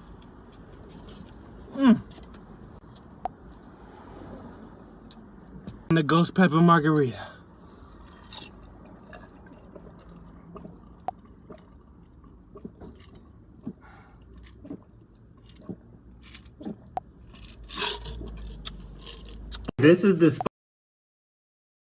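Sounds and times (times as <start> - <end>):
person gulping a drink: 8.0 - 19.7.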